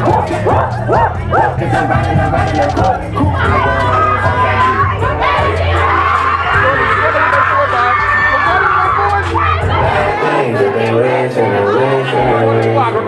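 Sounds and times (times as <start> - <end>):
crowd cheering and shouting: 0.0 - 13.0.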